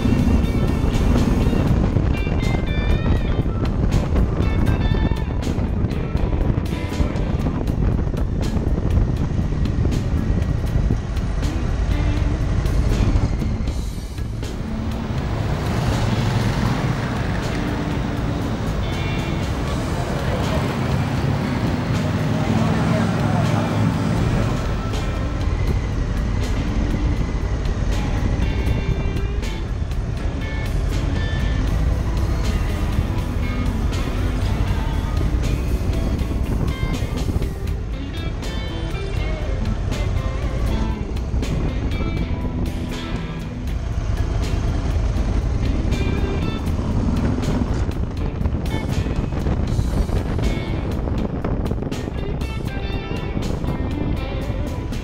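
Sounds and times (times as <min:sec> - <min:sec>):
background music: 0:00.0 - 0:55.0
motorcycle engine running: 0:00.0 - 0:55.0.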